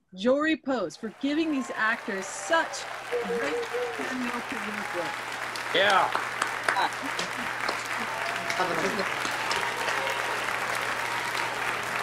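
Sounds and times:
people clapping: 1.0 - 12.0
person calling out: 3.2 - 4.1.

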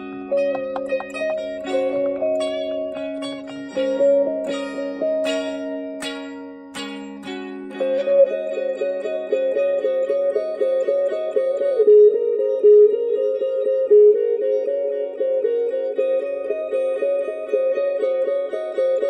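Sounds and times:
electric guitar picking notes: 0.0 - 19.0.

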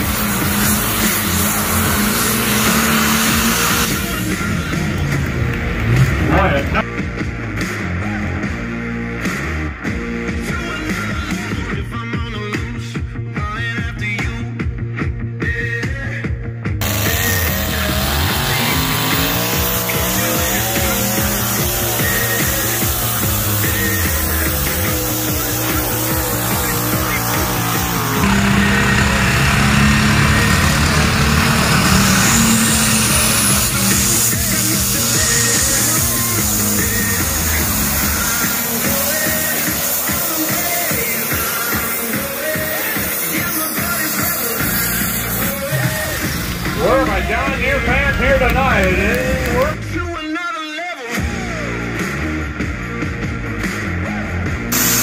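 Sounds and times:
tractor engine running under load: 0.0 - 6.5, 16.8 - 49.8.

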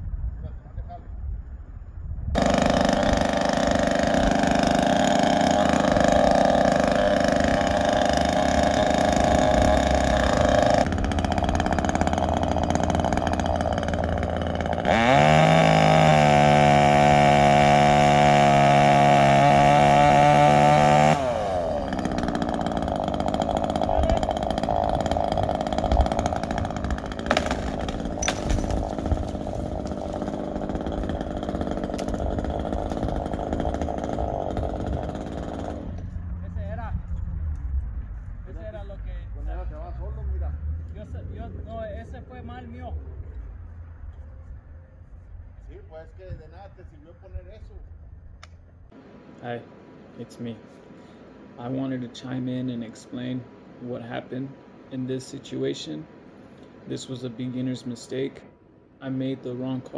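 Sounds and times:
chainsaw running and revving: 2.4 - 36.3.

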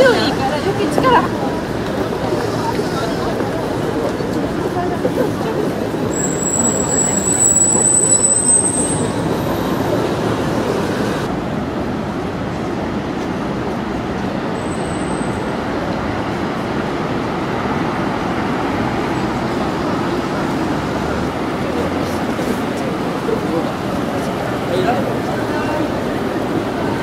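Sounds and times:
passing traffic: 0.0 - 27.0.

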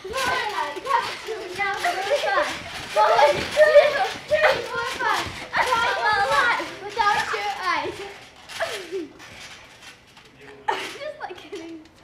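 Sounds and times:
girls shouting and squealing: 0.0 - 9.2.

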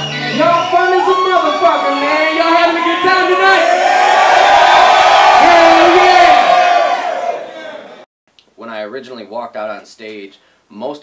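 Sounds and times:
concert crowd cheering and yelling: 0.0 - 8.0.

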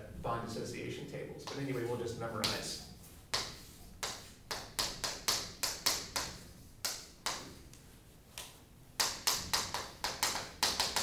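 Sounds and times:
chalk writing on a blackboard: 3.0 - 6.4.

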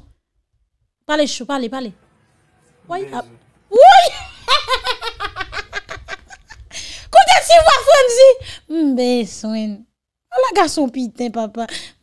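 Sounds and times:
woman laughing loudly: 3.8 - 6.7.

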